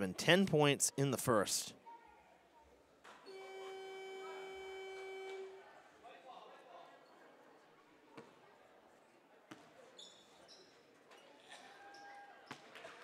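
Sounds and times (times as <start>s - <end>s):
scoreboard horn buzzing: 3.3s - 5.7s.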